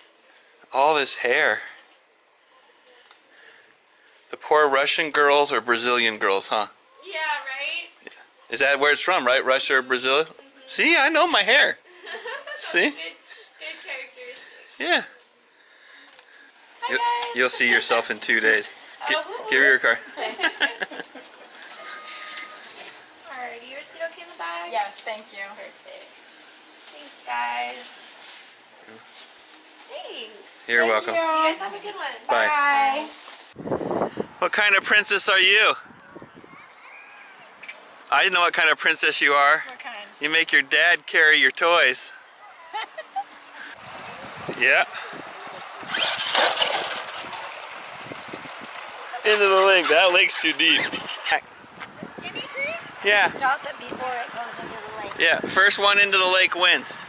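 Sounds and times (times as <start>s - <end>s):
shop background noise: 21.1s - 23.6s, 43.7s - 51.5s
rc truck motor and tyres: 45.2s - 51.2s.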